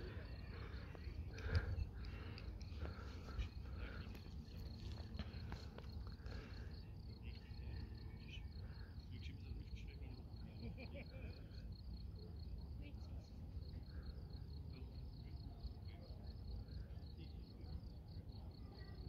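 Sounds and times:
constant low rumble: 0.0s - 19.0s
cricket chirping: 0.0s - 19.0s.

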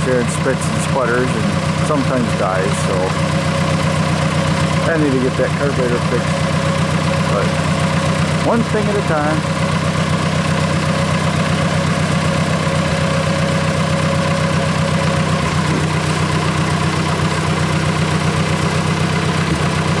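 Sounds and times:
tractor engine idling: 0.0s - 20.0s.

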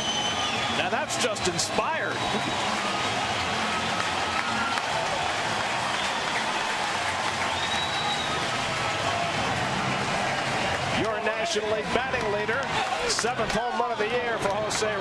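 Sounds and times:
stadium crowd cheering and applauding: 0.0s - 15.0s.

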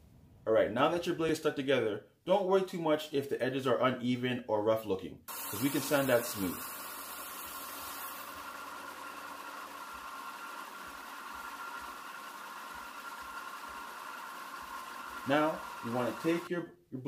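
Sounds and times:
belt sander running: 5.3s - 16.5s.

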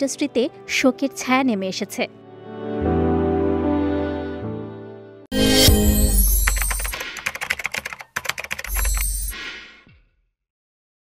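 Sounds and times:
keyboard typing clicks: 6.2s - 9.4s.

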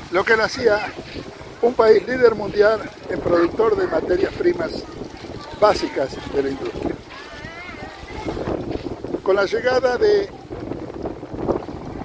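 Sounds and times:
faint voices: 0.0s - 12.0s
wind on microphone: 0.0s - 12.0s.

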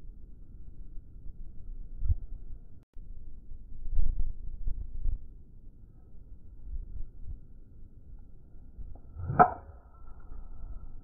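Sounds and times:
golf club striking ball: 9.1s - 9.8s
golf club swish: 9.1s - 9.8s.

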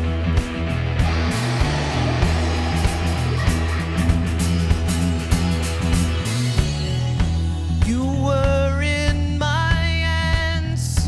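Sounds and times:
strummed electric guitar: 0.0s - 8.9s
bass guitar: 0.0s - 11.0s
drum beat: 1.0s - 6.8s.

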